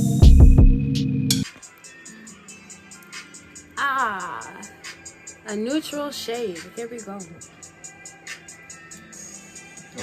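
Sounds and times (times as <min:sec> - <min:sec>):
loud electronic track with deep bass: 0:00.0 - 0:02.2
faint track with ticking beat: 0:00.0 - 0:10.0.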